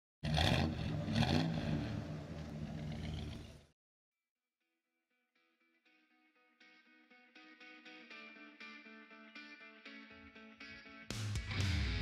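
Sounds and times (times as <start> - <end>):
car engine revving: 0.2 - 3.7.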